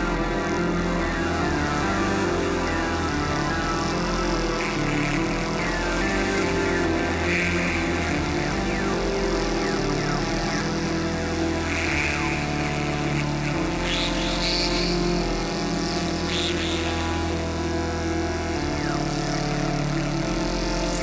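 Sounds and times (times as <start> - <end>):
hazy high synth texture: 0.0 - 21.0
low sequenced synthesizer notes: 0.0 - 21.0.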